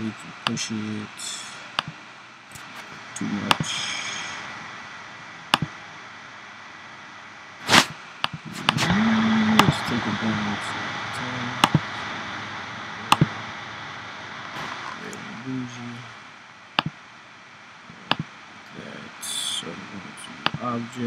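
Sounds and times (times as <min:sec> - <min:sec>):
person humming: 0:03.2 - 0:04.4, 0:08.5 - 0:10.6, 0:19.0 - 0:21.0.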